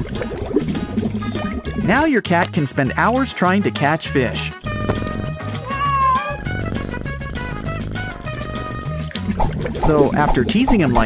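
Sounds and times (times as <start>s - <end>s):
background music: 0.0s - 11.0s
cat meowing: 5.6s - 6.6s.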